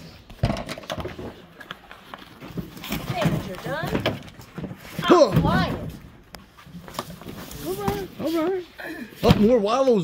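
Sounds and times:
cardboard boxes being handled: 0.1 - 9.6.

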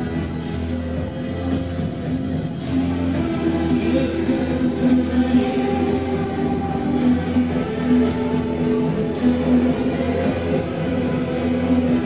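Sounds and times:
electric guitar: 0.0 - 12.0
steady low drone: 0.0 - 12.0.

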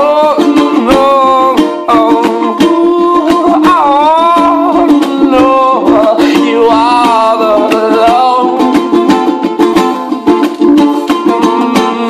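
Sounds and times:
man singing loudly: 0.0 - 8.8, 11.3 - 12.0
strummed acoustic string instrument: 0.0 - 12.0.

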